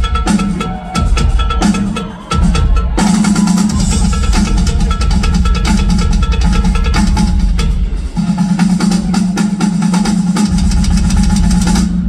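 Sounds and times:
rapid drum hits: 0.0 - 12.0.

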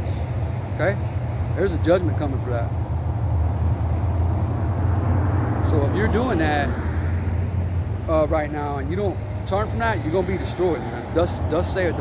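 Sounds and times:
road traffic rumble: 0.0 - 12.0
people talking: 1.6 - 2.7, 5.7 - 6.8, 8.1 - 12.0.

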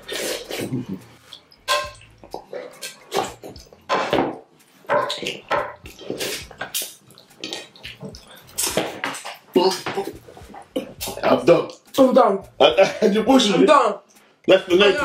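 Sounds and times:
wet slurping and sucking: 0.0 - 1.5, 5.2 - 11.2
fingers smearing on plates: 0.0 - 11.9.

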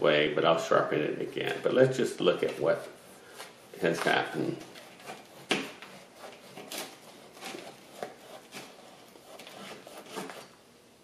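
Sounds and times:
knife scraping plastic pot: 1.1 - 10.6.

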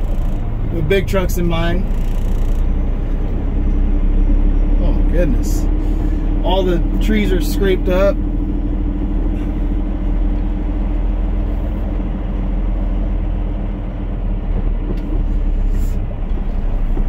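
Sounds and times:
diesel truck engine droning: 0.0 - 17.0.

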